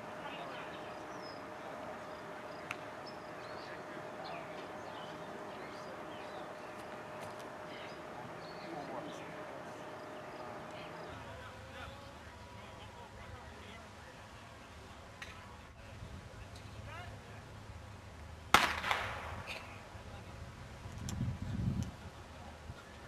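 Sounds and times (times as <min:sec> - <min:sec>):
sharp crack: 0:18.5 - 0:19.7.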